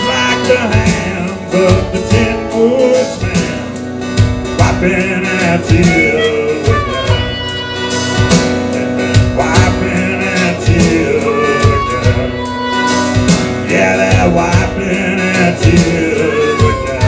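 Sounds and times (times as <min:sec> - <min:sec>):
acoustic guitar strummed: 0:00.0 - 0:17.0
drum machine beat: 0:00.0 - 0:17.0
harmonica bending notes: 0:00.0 - 0:17.0.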